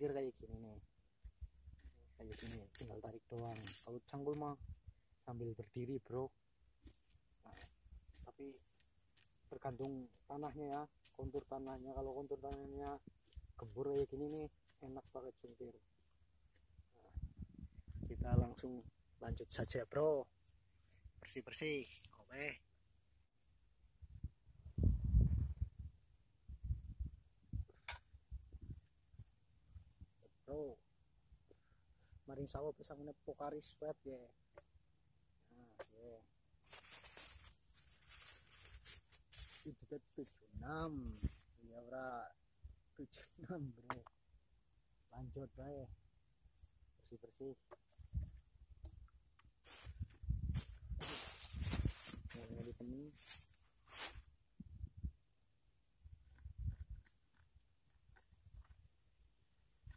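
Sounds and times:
hands pulling grass and soil: 1.8s - 4.4s, 36.6s - 41.6s, 49.6s - 54.2s
handling rustles: 36.6s - 39.7s.

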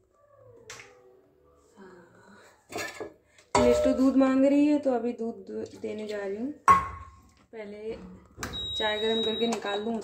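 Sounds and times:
woman speaking: 3.6s - 6.6s, 7.6s - 8.1s, 8.8s - 10.0s.

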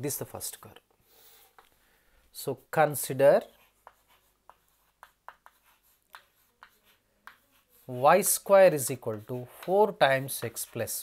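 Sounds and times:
chalk tapping and scratching: 1.4s - 1.7s, 2.5s - 11.0s.

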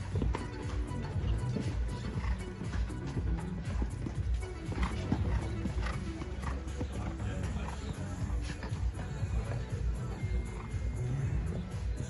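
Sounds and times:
background music: 0.0s - 12.0s
horse hooves on sand: 0.0s - 12.0s.

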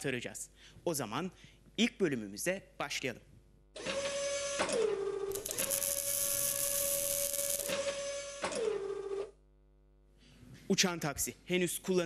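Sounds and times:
robot arm servos whirring: 5.3s - 8.6s.

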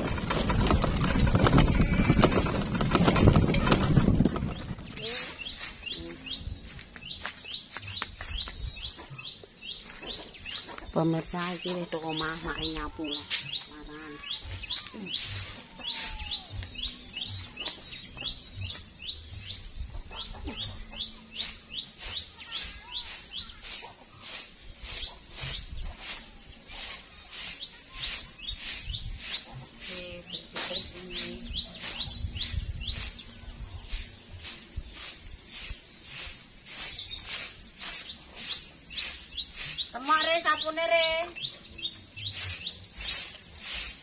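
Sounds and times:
bird chirping: 0.0s - 44.0s
broom sweeping leaves: 4.8s - 19.9s, 20.6s - 44.0s.

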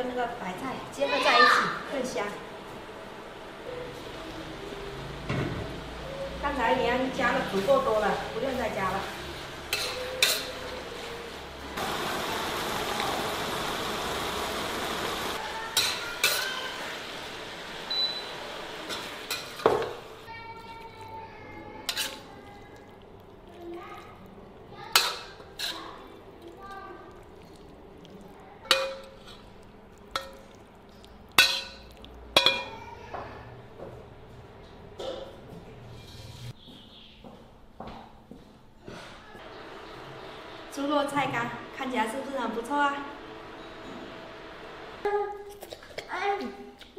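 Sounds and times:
frying sizzle: 0.0s - 20.4s, 21.8s - 33.8s, 39.4s - 45.1s
metal spatula scraping wok: 7.2s - 11.3s, 15.8s - 16.9s, 21.8s - 22.4s, 24.9s - 26.1s, 28.7s - 30.5s, 35.8s - 36.6s.

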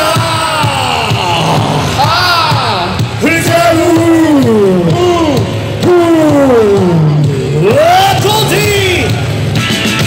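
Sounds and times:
live band notes sliding down: 0.0s - 10.0s.

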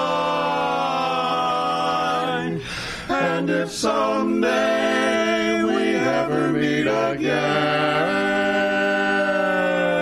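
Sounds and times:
men singing in harmony: 0.0s - 10.0s.

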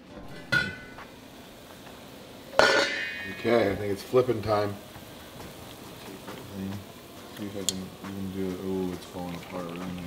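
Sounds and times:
broth bubbling at a boil: 1.4s - 10.0s.

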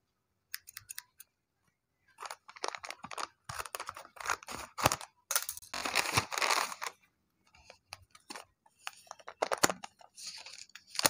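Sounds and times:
paper crinkling: 2.2s - 7.0s, 7.6s - 11.0s.

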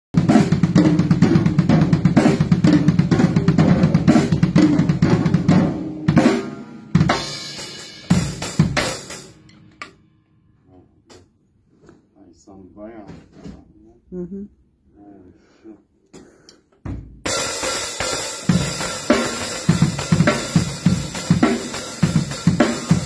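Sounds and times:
drum kit groove: 0.2s - 10.1s, 16.8s - 23.0s.

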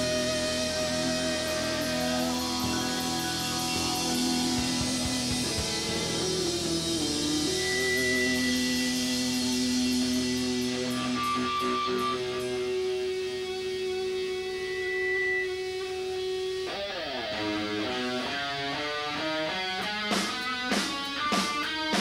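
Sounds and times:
guitar sustained notes: 0.0s - 21.9s
drums: 0.0s - 22.0s.

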